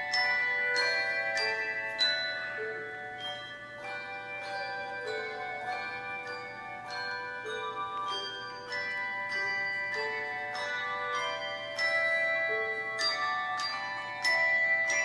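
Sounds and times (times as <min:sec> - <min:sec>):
handbell choir playing: 0:00.0 - 0:15.0.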